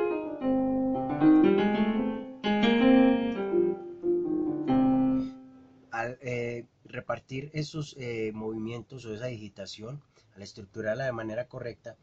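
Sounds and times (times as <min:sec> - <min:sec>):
keyboard piano notes and chords: 0:00.0 - 0:05.7.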